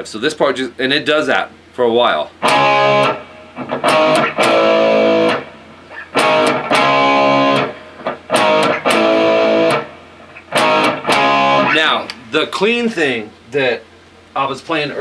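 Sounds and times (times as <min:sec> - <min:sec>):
electric guitar power chord riff: 0:02.4 - 0:12.2.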